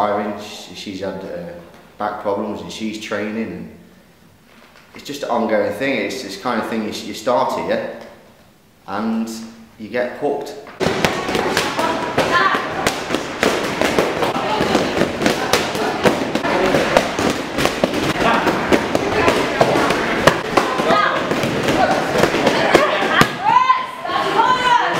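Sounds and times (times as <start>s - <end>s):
punches and kicks striking pads: 10.8s - 23.8s
voices and shouts: 18.0s - 24.9s.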